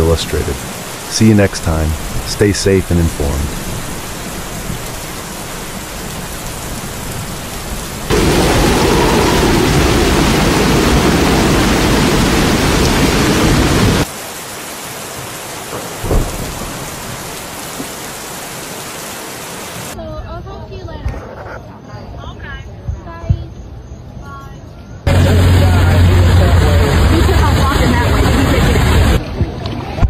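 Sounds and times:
floodwater rushing: 0.0 - 20.0, 25.1 - 29.3
water surging and churning: 0.0 - 20.0, 25.1 - 30.0
short thump: 16.0 - 16.6.

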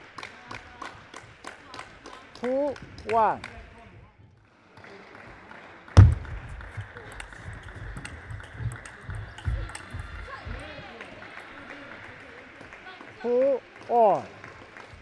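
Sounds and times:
low thuds: 6.0 - 10.9
table tennis ball clicking: 6.0 - 10.9.

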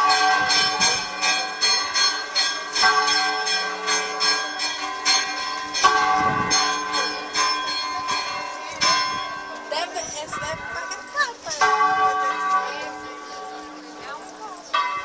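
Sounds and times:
church bells tolling rapidly: 0.0 - 15.0.

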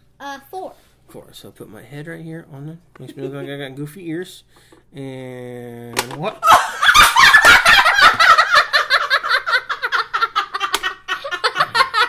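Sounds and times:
girl laughing: 6.4 - 12.0.

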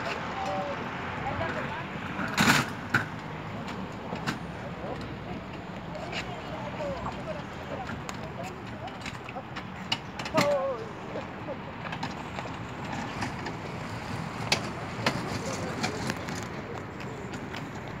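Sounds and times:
indistinct voices of bystanders: 0.0 - 18.0.

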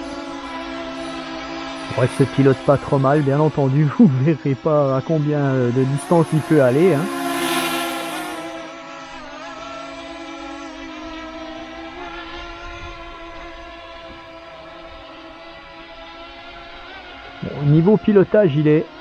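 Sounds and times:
drone propellers buzzing: 0.0 - 17.5.

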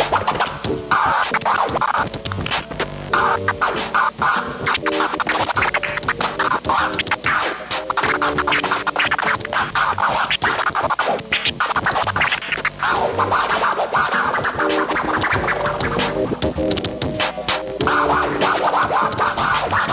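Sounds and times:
backing music: 0.0 - 19.9
turntable scratching: 0.0 - 19.9.

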